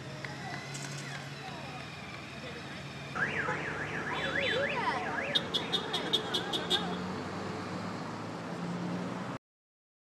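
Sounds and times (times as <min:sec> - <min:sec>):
car alarm: 0:03.2 - 0:06.8.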